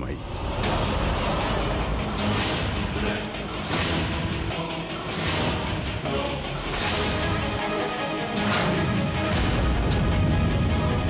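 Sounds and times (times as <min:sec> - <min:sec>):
dramatic rushing sound effect: 0:00.0 - 0:09.3.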